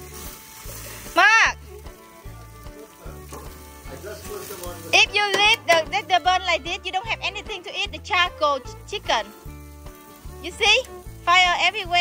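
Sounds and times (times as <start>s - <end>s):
chicken sizzling on grill: 0.0s - 12.0s.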